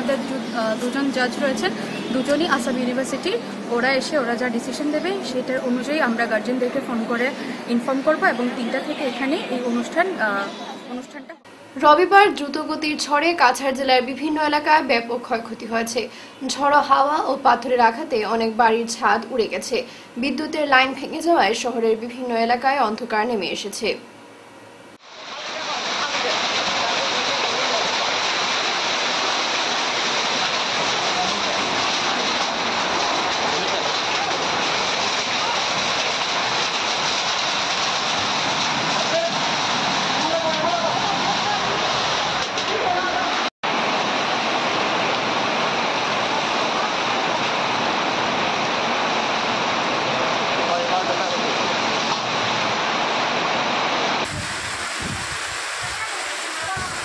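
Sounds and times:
heavy rain and hail: 25.0 - 57.0
gusting wind buffeting microphone: 54.2 - 57.0.

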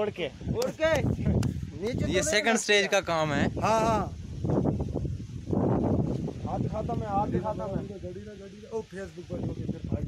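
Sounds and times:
muffled men talking: 6.4 - 10.0.

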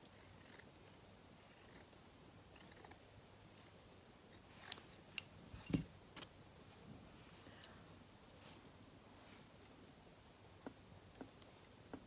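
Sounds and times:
scissors cutting fabric: 2.6 - 3.0.

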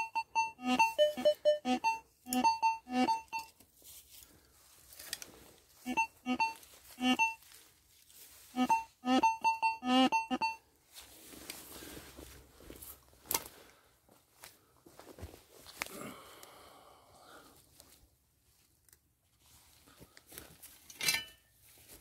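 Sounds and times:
metal detector beeps: 0.0 - 3.6, 5.8 - 7.4, 8.6 - 10.6.

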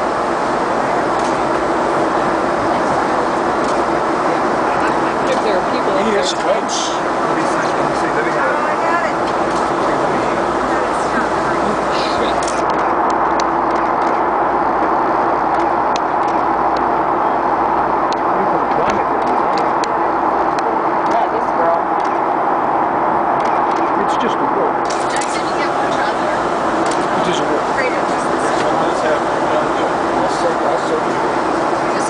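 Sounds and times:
aircraft cabin drone: 0.0 - 32.0.

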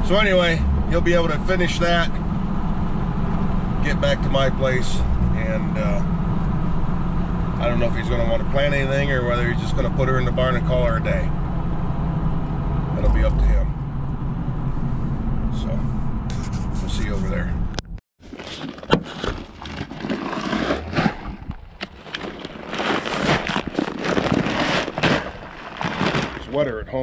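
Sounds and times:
road rumble inside truck cab: 0.0 - 27.0
paper bags rustling: 18.2 - 26.6.

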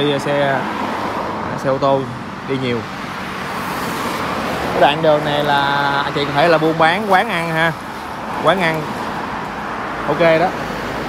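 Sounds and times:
highway traffic rush: 0.0 - 11.0.

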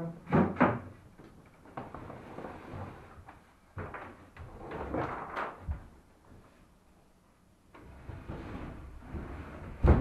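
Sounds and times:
wooden panel scraping: 7.8 - 10.0.

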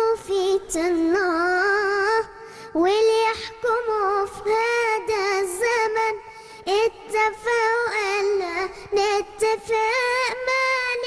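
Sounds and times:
girl singing into a microphone: 0.0 - 11.0.

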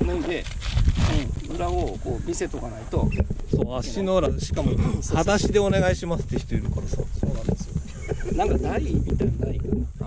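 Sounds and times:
people talking: 0.0 - 10.0
wind rumble on microphone: 0.0 - 10.0.

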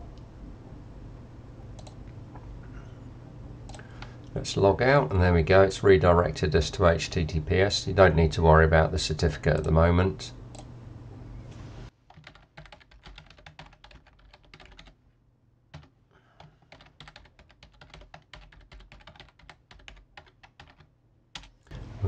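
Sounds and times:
typing on computer keyboard: 12.1 - 15.0, 15.7 - 21.6.

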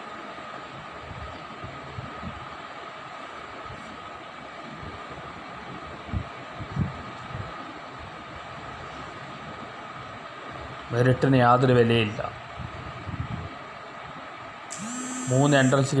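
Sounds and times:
mechanical hum: 0.0 - 16.0
faint high whine: 14.7 - 16.0.

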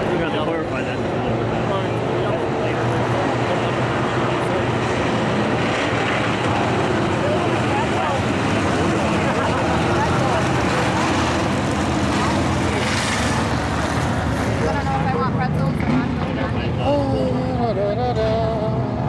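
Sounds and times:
car engines running at low speed: 0.0 - 19.0
indistinct voices talking: 0.0 - 19.0.

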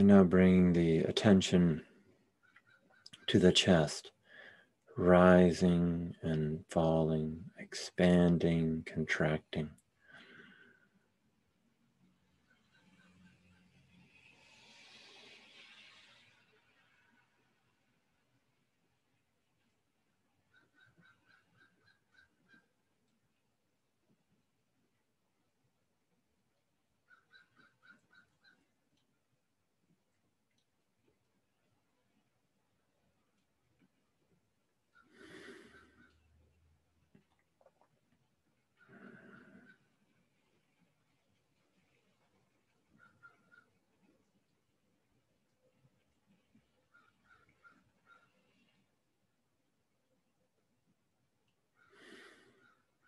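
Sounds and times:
soft hiss: 12.0 - 19.7.

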